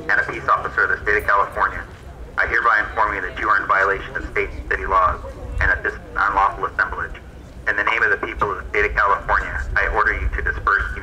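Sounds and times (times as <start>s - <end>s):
man speaking over loudspeaker: 0.0s - 11.0s
steady low rumble: 0.0s - 11.0s.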